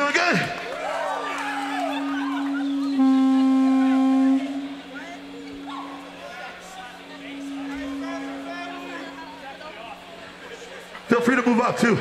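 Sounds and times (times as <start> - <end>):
guitar amp feedback tone: 1.2 - 12.0.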